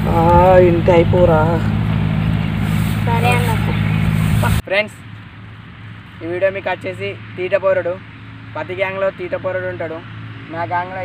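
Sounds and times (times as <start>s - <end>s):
steady low rumble: 0.0s - 7.2s
boy speaking: 2.9s - 4.6s.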